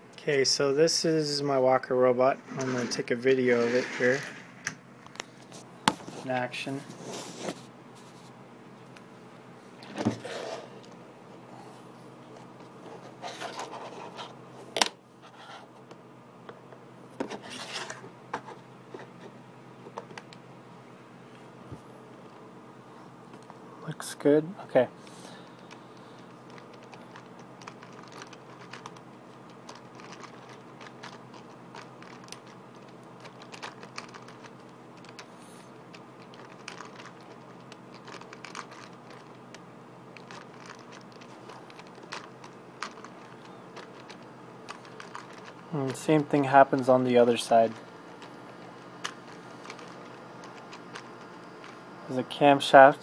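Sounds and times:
robot legs rubbing and rasping: 2.4s - 4.7s.

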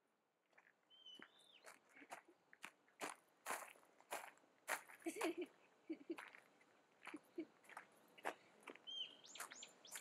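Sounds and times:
footsteps crunching on gravel: 0.4s - 10.0s
whistled bird call: 8.9s - 10.0s.

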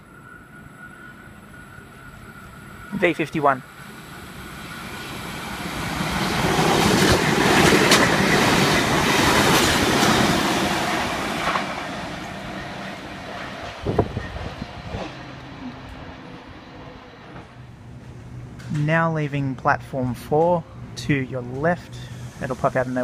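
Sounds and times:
train wheels rumbling on rails: 0.0s - 23.0s
clickety-clack from rail joints: 5.2s - 18.9s.

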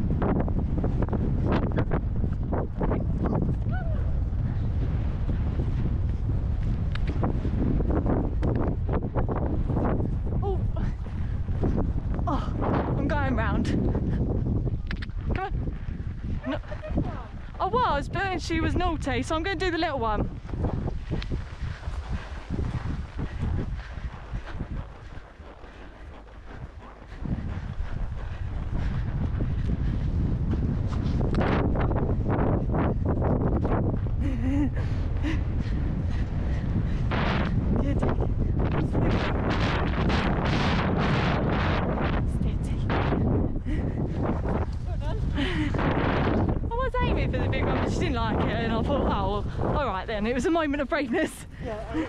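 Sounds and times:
horse cantering strides: 0.0s - 52.0s
wind buffeting microphone: 0.0s - 52.0s.

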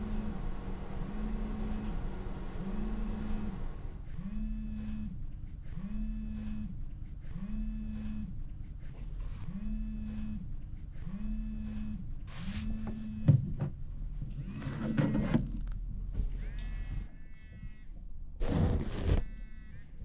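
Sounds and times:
phone vibrating on wooden table: 2.6s - 8.3s, 16.4s - 18.0s, 18.8s - 20.0s.

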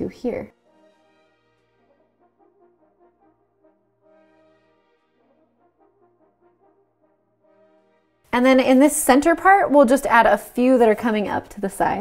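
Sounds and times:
faint background music: 0.0s - 3.3s, 8.2s - 12.0s.

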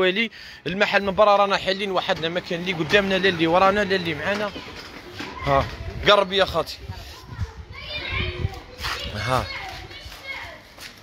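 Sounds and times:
children chattering: 0.6s - 11.0s.

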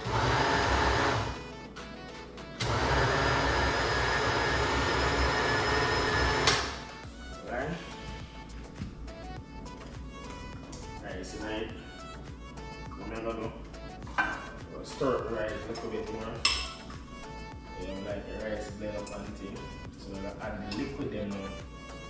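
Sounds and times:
blender grinding rice: 0.0s - 1.4s, 2.6s - 6.6s.

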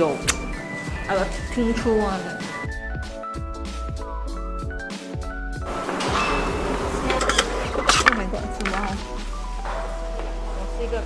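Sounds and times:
metal cylinder rattling: 6.0s - 9.1s.

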